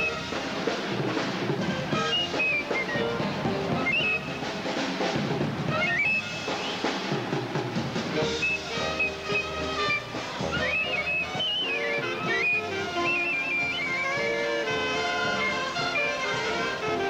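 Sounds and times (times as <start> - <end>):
drums keeping a beat: 0.0 - 17.0
high melody line: 1.8 - 4.8, 5.7 - 6.9, 8.2 - 17.0.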